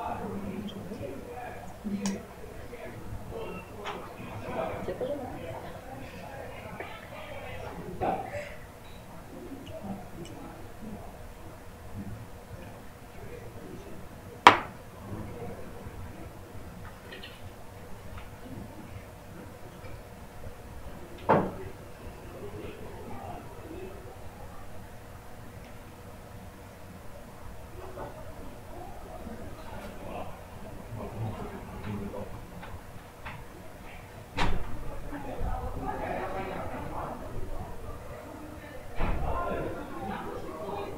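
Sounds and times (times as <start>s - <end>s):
faint room noise: 0.0s - 40.9s
murmur of voices: 0.0s - 40.9s.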